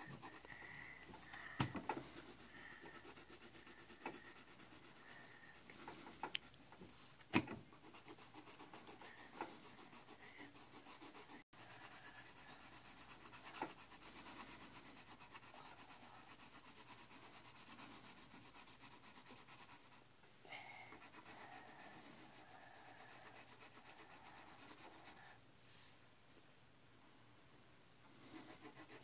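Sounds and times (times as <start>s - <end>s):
pencil shading on paper: 0.0s - 6.3s, 7.7s - 20.0s, 20.8s - 25.4s, 28.2s - 29.0s.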